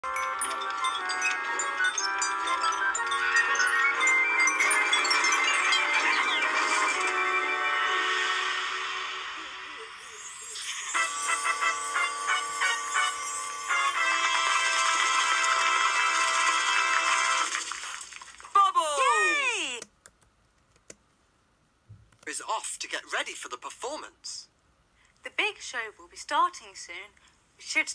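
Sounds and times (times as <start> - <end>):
jingly theme tune: 0.0 - 17.5.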